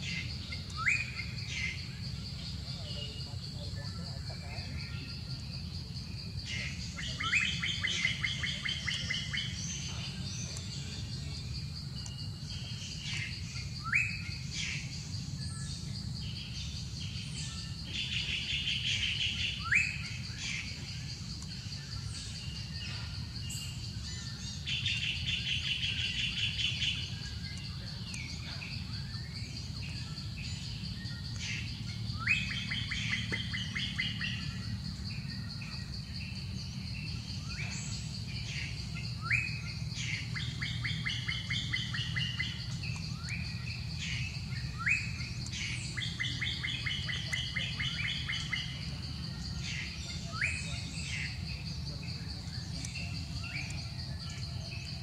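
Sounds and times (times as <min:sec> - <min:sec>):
birds chirping and trilling: 0:00.0 - 0:55.0
steady high-pitched whine: 0:00.0 - 0:55.0.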